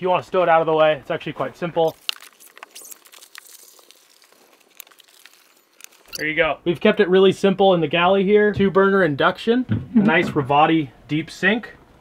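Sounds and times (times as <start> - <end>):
mesh screen rustling: 1.8 - 6.3.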